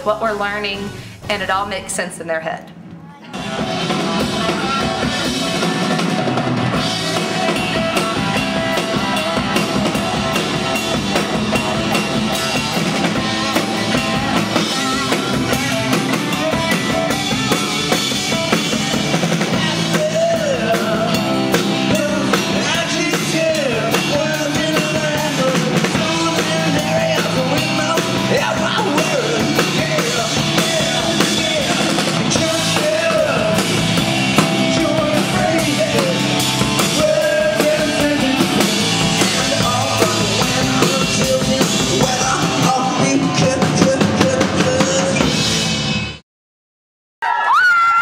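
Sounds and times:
rock song with singing and drums: 0:02.8 - 0:46.2.

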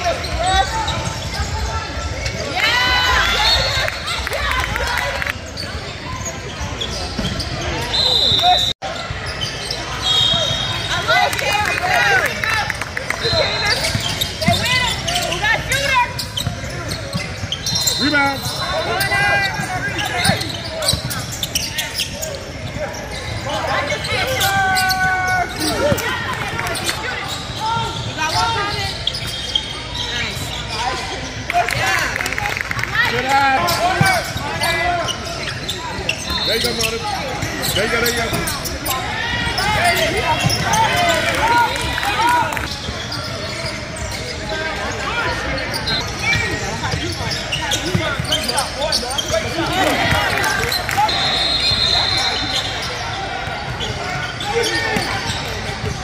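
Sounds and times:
voices in large gym: 0:00.0 - 0:56.0.

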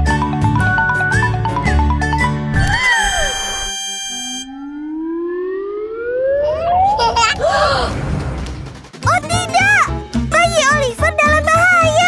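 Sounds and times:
falling whistle note: 0:02.6 - 0:06.5
rising slide whistle: 0:02.6 - 0:06.9.

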